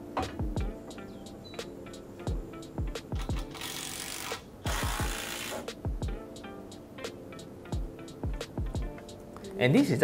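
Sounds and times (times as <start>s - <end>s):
music with steady beat: 0.0s - 10.0s
cordless drill running: 3.6s - 5.6s.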